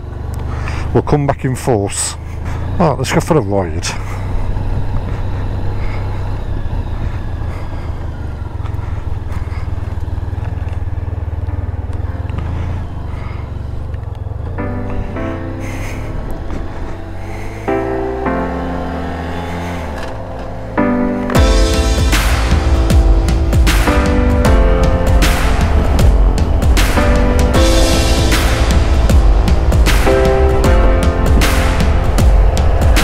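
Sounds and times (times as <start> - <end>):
motorcycle engine low rumble: 0.0 - 33.0
music with held chords: 11.2 - 33.0.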